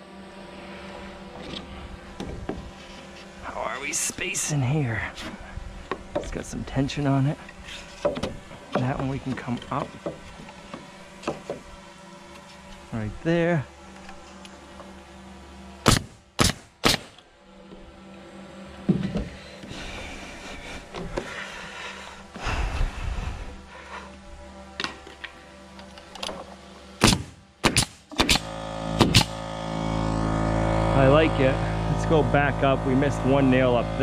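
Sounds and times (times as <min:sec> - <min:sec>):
hum: 0:00.0 - 0:34.0
hammer driving nails into wood: 0:15.8 - 0:17.1, 0:27.0 - 0:29.4.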